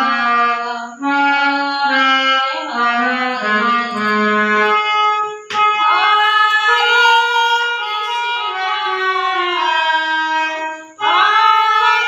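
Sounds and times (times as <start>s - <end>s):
woman singing: 0.0s - 4.7s, 5.9s - 12.0s
harmonium holding notes: 0.0s - 12.0s.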